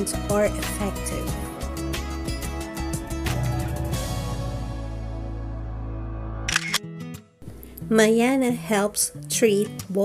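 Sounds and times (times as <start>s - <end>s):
woman narrating: 0.0s - 1.5s, 7.8s - 10.0s
soft background music: 0.0s - 10.0s.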